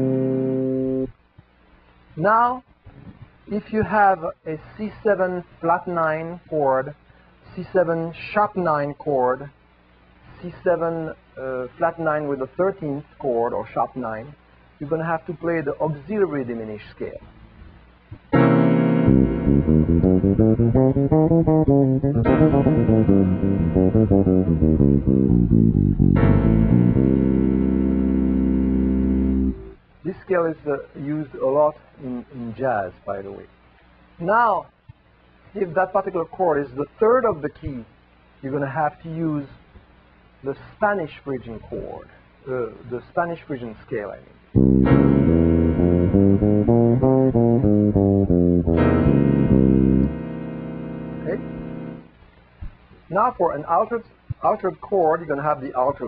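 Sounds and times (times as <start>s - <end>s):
bass chord ringing: 0.0s - 1.1s, 18.4s - 29.8s, 44.6s - 52.1s
electric bass guitar notes: 0.0s - 1.1s, 18.2s - 29.8s, 44.6s - 52.2s.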